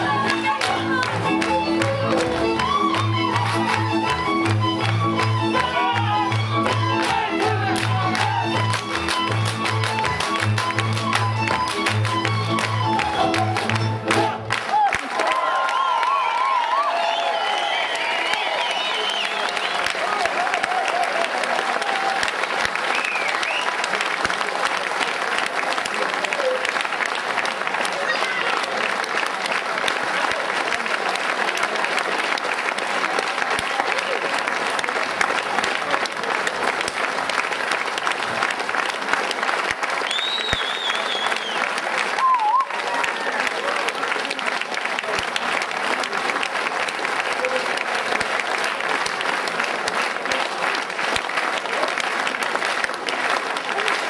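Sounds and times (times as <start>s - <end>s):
audience applauding: 0.0s - 54.0s
calls and whistles: 40.1s - 41.6s.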